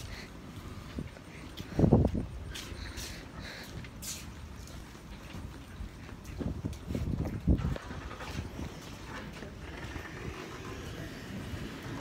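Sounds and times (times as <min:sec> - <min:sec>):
footsteps: 0:00.0 - 0:10.0
wind on microphone: 0:05.8 - 0:12.0.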